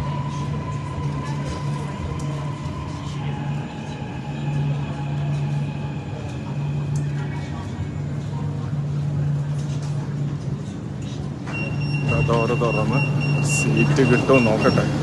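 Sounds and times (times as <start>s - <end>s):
metro train pulling in: 0.0s - 15.0s
passengers' voices: 0.0s - 15.0s.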